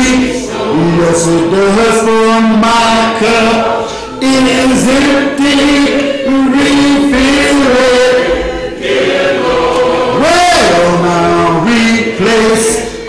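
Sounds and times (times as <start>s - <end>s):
man chanting: 0.0s - 8.2s, 10.1s - 12.9s.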